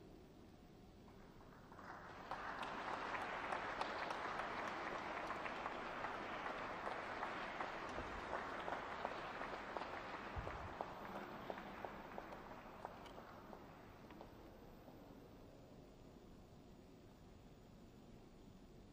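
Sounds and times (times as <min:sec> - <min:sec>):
audience applauding: 0:01.3 - 0:14.3.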